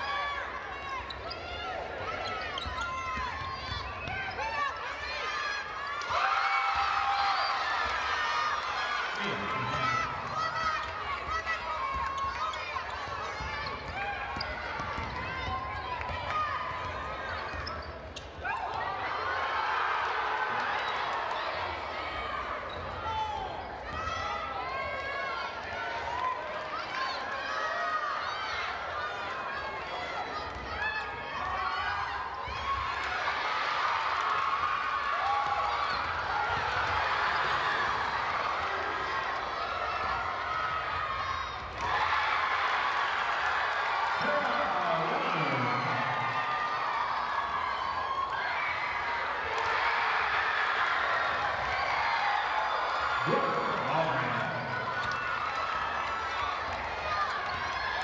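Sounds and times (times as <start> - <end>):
crowd chatter: 0.0 - 58.0
sneakers squeaking on court: 0.9 - 4.9, 12.0 - 18.4
basketball bouncing: 13.2 - 17.8.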